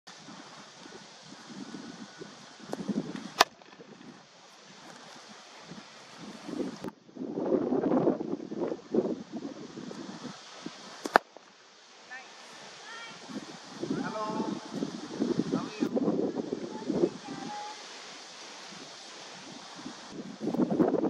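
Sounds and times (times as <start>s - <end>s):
wind buffeting microphone: 0.1s - 21.0s
sharp crack: 2.7s - 4.1s, 11.0s - 11.5s.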